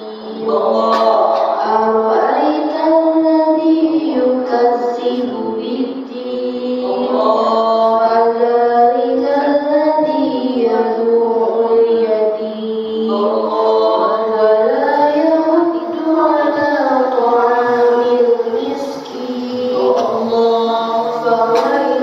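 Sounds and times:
woman reciting melodically: 0.0s - 22.0s.

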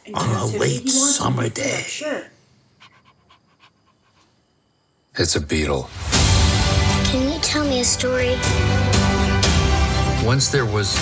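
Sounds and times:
dog panting: 2.8s - 4.4s.

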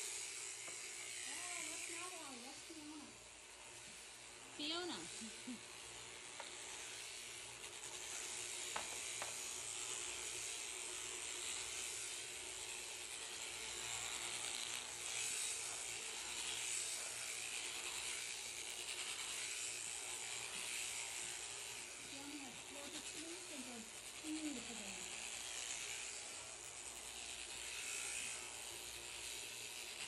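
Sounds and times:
shearing handpiece chattering: 0.0s - 30.0s.

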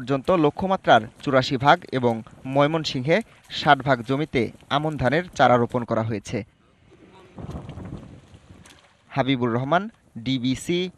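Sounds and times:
muddy water sloshing: 0.0s - 10.1s.

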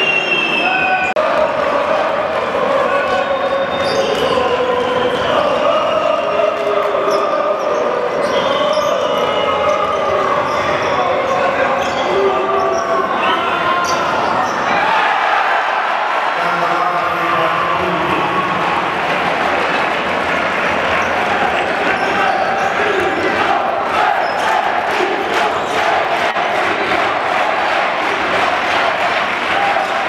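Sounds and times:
crowd chanting in unison: 0.6s - 10.6s, 14.6s - 16.4s, 21.3s - 30.0s.

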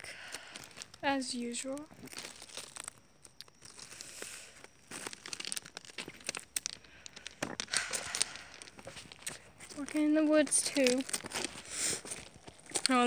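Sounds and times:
footsteps on gravel: 0.4s - 3.0s, 3.6s - 13.0s.

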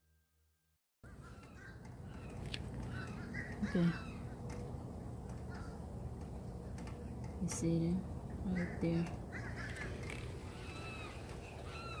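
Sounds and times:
animal calling: 1.1s - 4.4s, 8.6s - 12.0s
low background hum: 1.1s - 12.0s.

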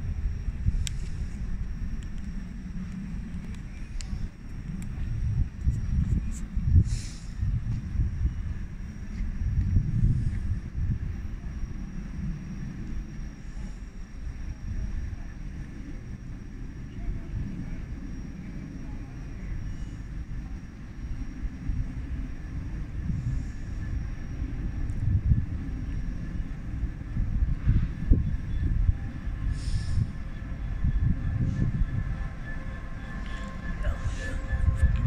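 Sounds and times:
high-pitched whine: 0.0s - 35.0s
train rumbling: 27.3s - 35.0s.

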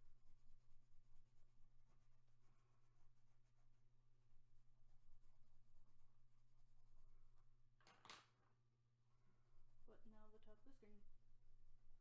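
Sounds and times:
pencil scratching on paper: 0.3s - 6.4s.

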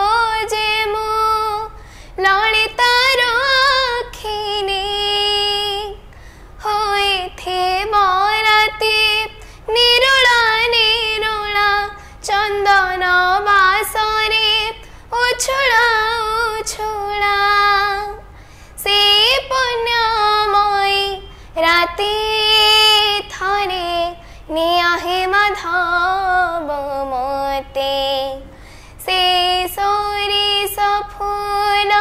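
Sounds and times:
girl singing devotional song: 0.0s - 32.0s.

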